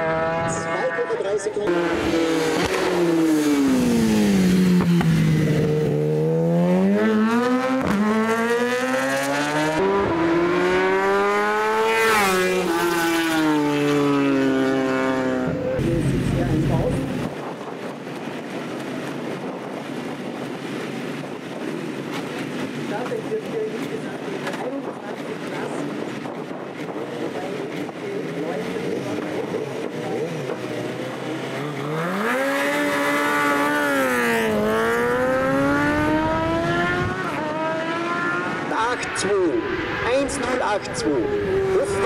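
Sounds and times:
motorcycle engine revving and accelerating: 0.0s - 18.4s, 20.3s - 42.0s.

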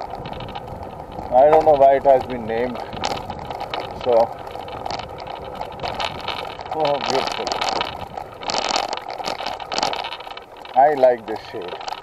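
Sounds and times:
camera rattling on dirt path: 0.0s - 12.0s.

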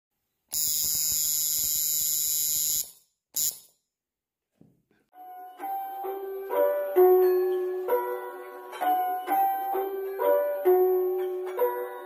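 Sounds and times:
electric tattoo machine buzzing: 0.5s - 3.7s.

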